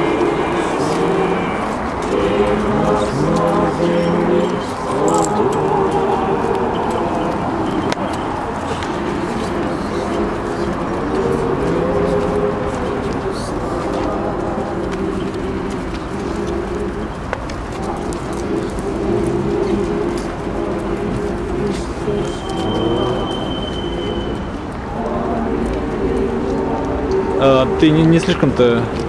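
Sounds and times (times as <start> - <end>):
people talking: 0.0 - 17.1, 17.7 - 29.0
crowd singing a slow chant: 0.0 - 29.0.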